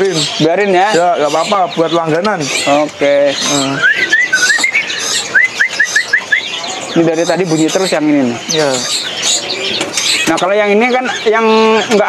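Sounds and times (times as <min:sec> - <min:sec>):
bird singing whistled notes: 0:00.0 - 0:11.9
high bird chirps: 0:00.0 - 0:12.0.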